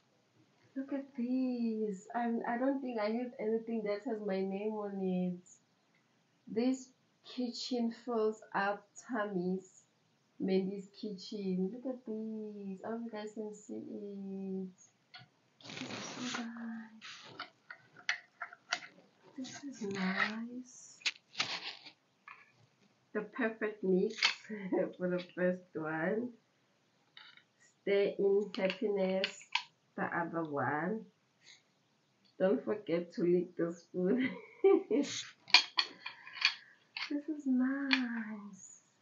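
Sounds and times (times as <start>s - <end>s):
short hiss: 15.6s - 17.4s
wooden spoons clacking: 24.1s - 24.5s, 35.1s - 37.1s
wooden utensils knocking: 35.4s - 37.1s.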